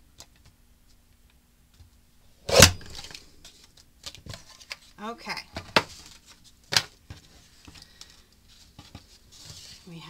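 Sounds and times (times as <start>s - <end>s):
paper rustling: 5.8s - 10.0s.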